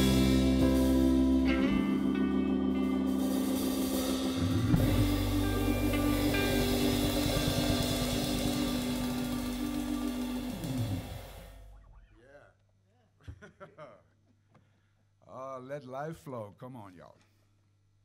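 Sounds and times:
blues band playing: 0.0s - 12.1s
cymbal crash: 3.1s - 11.8s.

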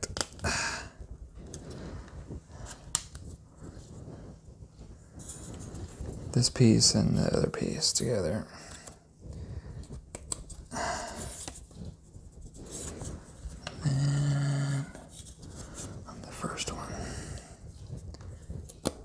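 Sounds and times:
whispered muttering: 13.7s - 15.0s.

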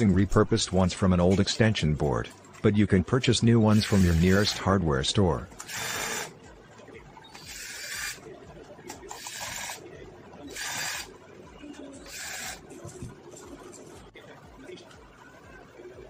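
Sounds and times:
screwdriver scraping strokes: 7.4s - 8.2s.

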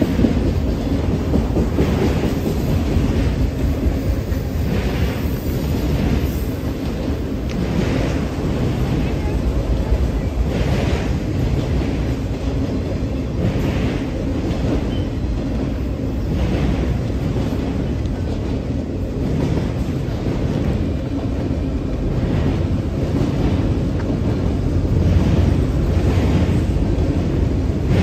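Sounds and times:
freight train wheels rumbling: 0.0s - 28.0s
train wheel clatter: 0.0s - 28.0s.

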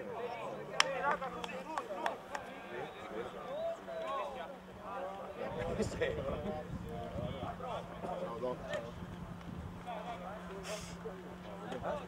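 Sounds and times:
voices shouting and calling: 0.0s - 12.0s.

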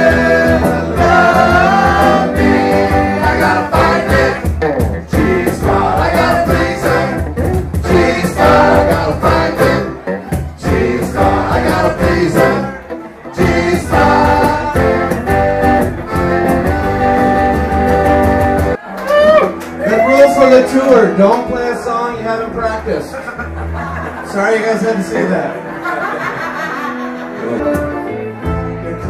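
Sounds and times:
men singing together: 0.0s - 10.0s, 10.6s - 15.4s
strummed acoustic guitars: 0.0s - 18.8s
accordion: 0.0s - 18.9s
man talking: 19.9s - 23.2s, 24.3s - 25.6s.

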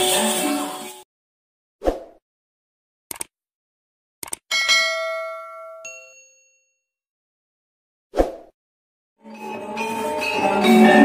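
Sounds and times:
double mouse click: 3.1s - 3.3s
bright bell-like ding: 4.5s - 6.8s.

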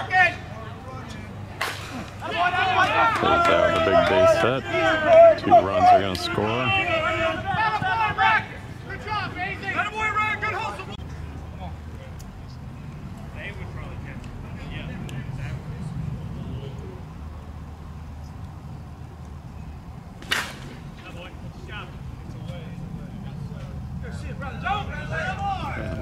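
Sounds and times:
low rumble of ballpark noise: 0.0s - 26.0s
bat cracking a softball: 1.6s - 2.2s, 20.2s - 21.0s.

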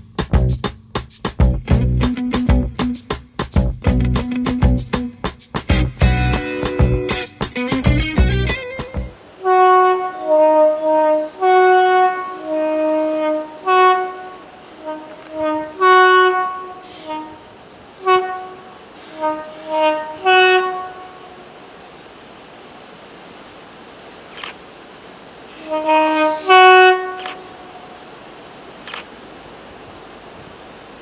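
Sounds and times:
locomotive two-tone horn blasts: 9.3s - 21.5s, 25.5s - 27.8s.

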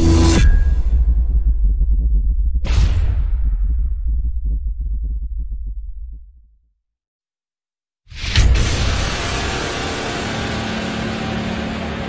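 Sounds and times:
low rumble: 0.0s - 6.5s.

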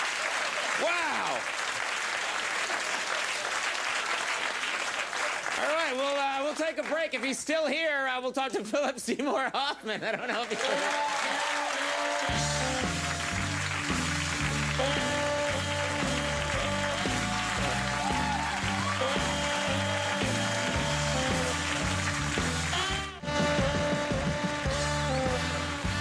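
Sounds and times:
band playing: 10.6s - 26.0s.

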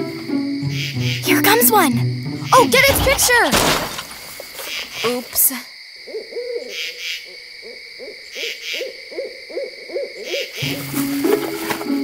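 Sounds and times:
crickets chirping: 0.0s - 12.0s
owl hooting: 6.0s - 12.0s.

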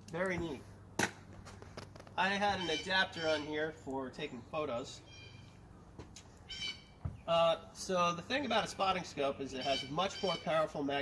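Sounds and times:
faint high-pitched bird calls: 2.4s - 3.7s, 4.3s - 5.6s, 6.4s - 7.3s, 9.5s - 10.8s.

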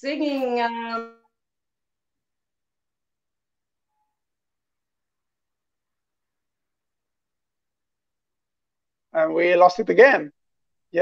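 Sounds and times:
woman speaking: 0.0s - 1.3s.

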